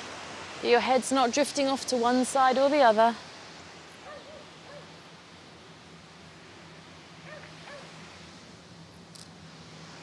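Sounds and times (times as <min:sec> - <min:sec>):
hiss of surf: 0:00.0 - 0:10.0.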